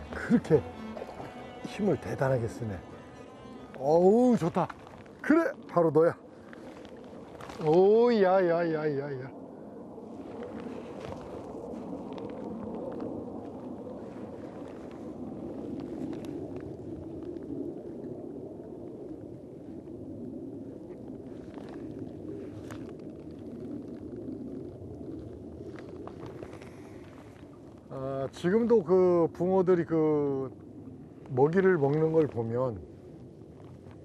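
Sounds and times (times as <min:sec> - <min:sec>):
strong wind on microphone: 0:00.0 - 0:34.0.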